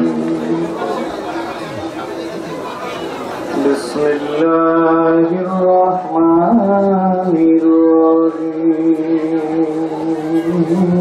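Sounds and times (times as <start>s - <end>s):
indistinct voices murmuring: 0.0s - 11.0s
man chanting through microphone: 3.5s - 11.0s.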